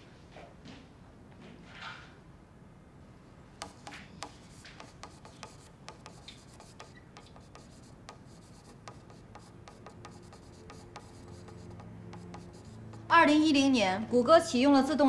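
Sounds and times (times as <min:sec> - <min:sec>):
pen tip tapping glass: 0:03.6 - 0:13.2
marker pen writing on glass: 0:03.6 - 0:13.6.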